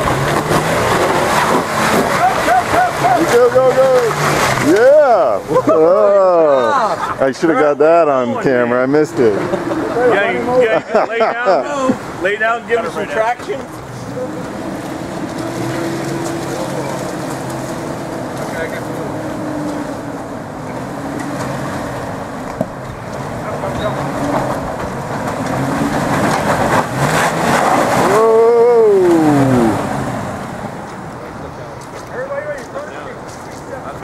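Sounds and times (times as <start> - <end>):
engine revving under load: 0.0 - 6.6, 12.2 - 31.6.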